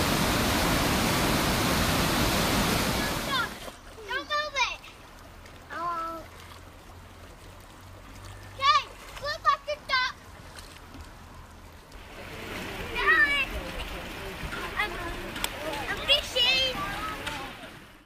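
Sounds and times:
creek water rushing and splashing: 0:00.0 - 0:18.0.

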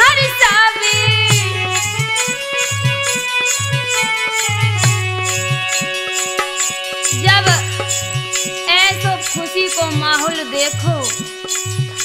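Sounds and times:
jingling percussion: 0:00.0 - 0:12.0
drum beat: 0:01.1 - 0:12.0.

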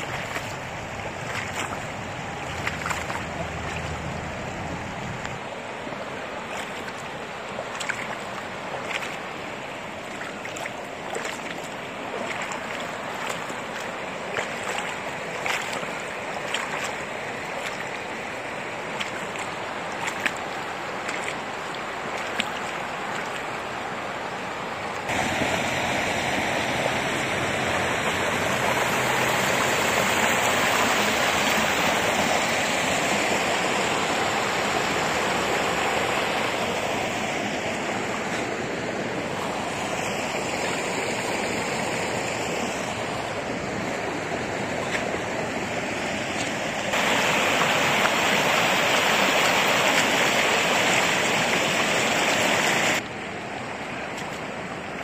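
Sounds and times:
floodwater rushing: 0:00.0 - 0:55.0.

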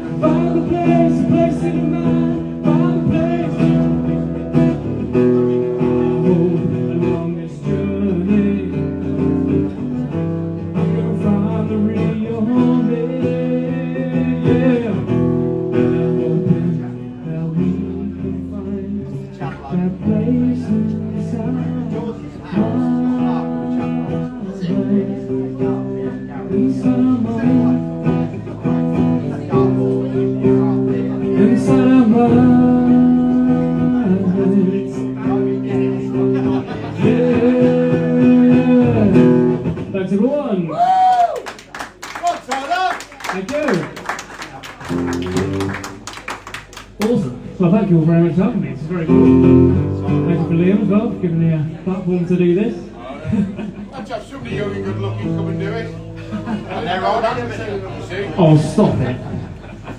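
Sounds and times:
strummed acoustic guitar: 0:00.0 - 0:40.2, 0:44.9 - 0:46.0, 0:47.6 - 0:52.5, 0:54.5 - 0:57.4
man singing: 0:00.0 - 0:40.4, 0:49.1 - 0:51.8.

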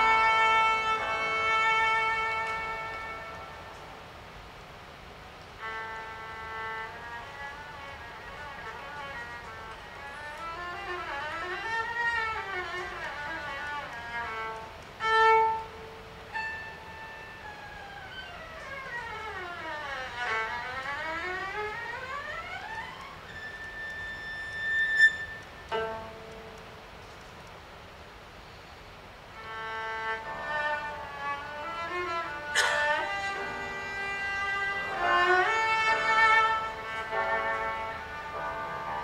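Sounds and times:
cello played with a bow: 0:00.0 - 0:03.9, 0:05.6 - 0:26.8, 0:29.3 - 0:39.0.

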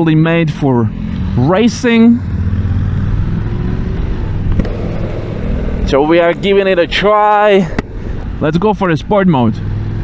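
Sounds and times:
wind rushing over microphone: 0:02.2 - 0:08.7.

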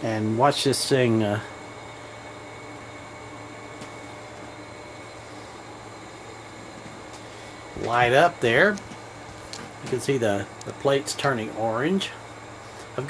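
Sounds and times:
low electrical hum: 0:00.0 - 0:13.0.

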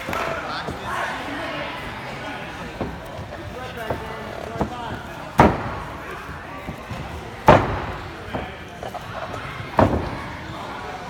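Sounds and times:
voices echoing in hall: 0:00.0 - 0:11.0.

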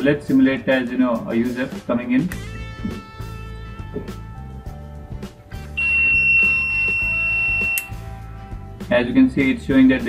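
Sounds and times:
guitar music: 0:02.2 - 0:09.2
high-pitched buzzer beep: 0:05.8 - 0:07.9.

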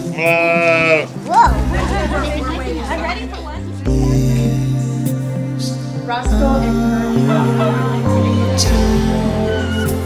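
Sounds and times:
sheep bleating: 0:00.0 - 0:01.2
soft background music: 0:00.0 - 0:10.0.

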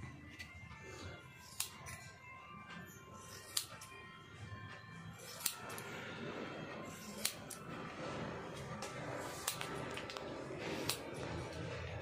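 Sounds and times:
scissors snipping hair: 0:01.4 - 0:02.0, 0:03.2 - 0:03.9, 0:05.2 - 0:05.9, 0:06.9 - 0:07.6, 0:09.3 - 0:10.2, 0:10.8 - 0:11.0.

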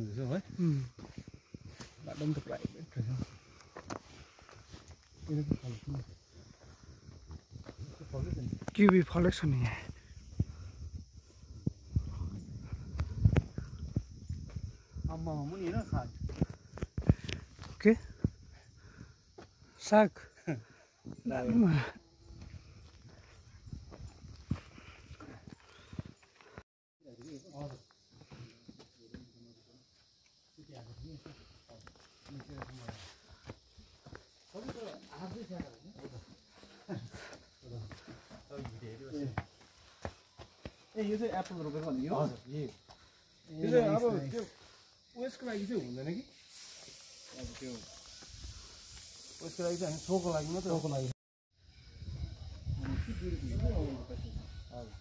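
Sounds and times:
high-pitched hiss: 0:00.0 - 0:26.0, 0:27.2 - 0:55.0
man talking: 0:43.5 - 0:44.6.

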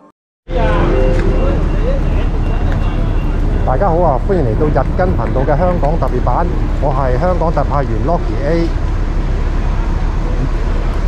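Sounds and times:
road traffic rumble: 0:00.5 - 0:11.0
voices of passersby: 0:00.5 - 0:11.0.

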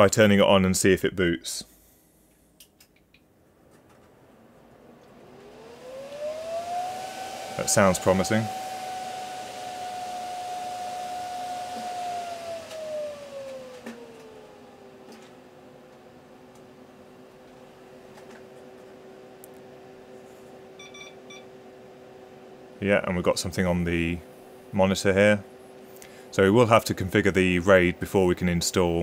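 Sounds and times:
cooling fans whining: 0:00.0 - 0:29.0
faint short beeps: 0:20.8 - 0:21.5.

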